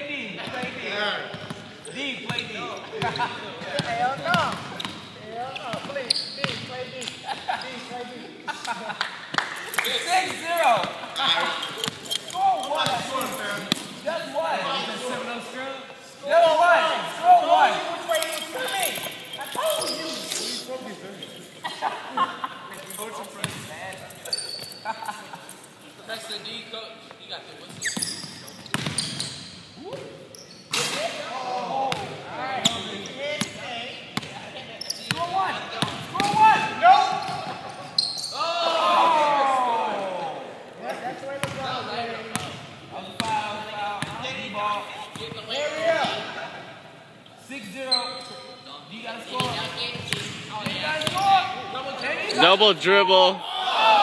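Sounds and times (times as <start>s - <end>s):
basketball bouncing on gym floor: 28.7s - 29.2s.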